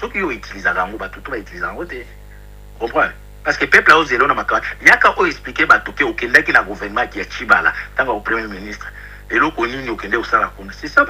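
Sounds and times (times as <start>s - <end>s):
man speaking: 0.0s - 2.2s, 2.8s - 11.0s.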